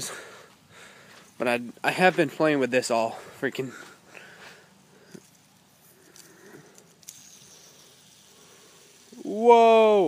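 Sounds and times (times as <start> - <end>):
fidget spinner whirring: 5.0 - 10.0
fingers clicking fidget spinner: 6.1 - 9.4.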